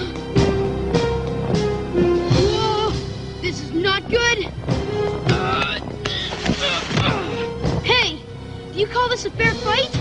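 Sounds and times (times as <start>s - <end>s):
background music: 0.0s - 10.0s
vocal grunts and cries: 5.2s - 7.7s.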